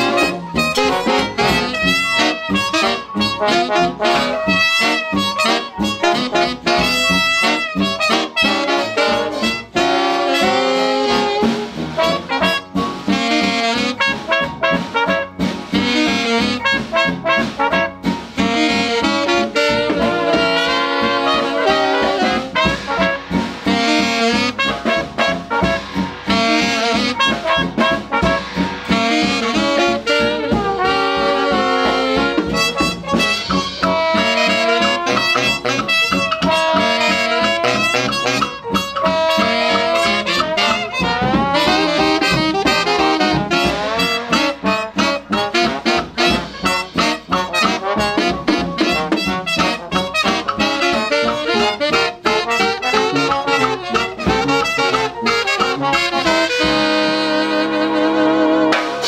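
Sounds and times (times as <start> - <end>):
hot jazz band playing: 0.0 - 59.0.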